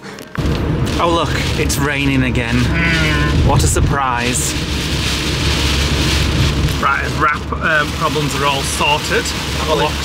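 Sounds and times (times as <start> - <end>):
engine and tyres droning: 0.0 - 10.0
rain hissing on road: 0.3 - 10.0.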